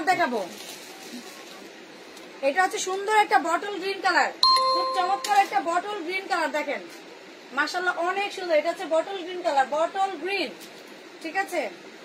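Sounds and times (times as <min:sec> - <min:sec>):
electronic chime: 0:04.4 - 0:05.5.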